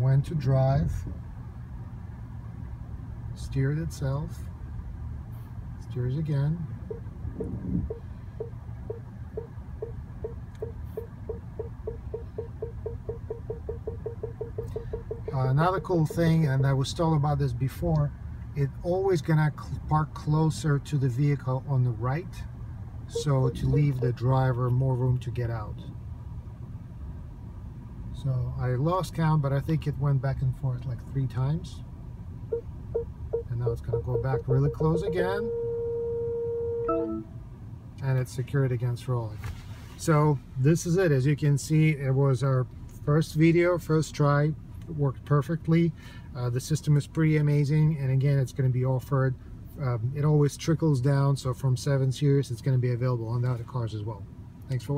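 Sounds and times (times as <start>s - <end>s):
car low rumble: 0.0s - 54.9s
parking sensor beeping: 6.8s - 16.9s, 23.1s - 24.6s, 32.5s - 37.4s
short chime: 23.1s - 24.1s, 36.8s - 37.3s.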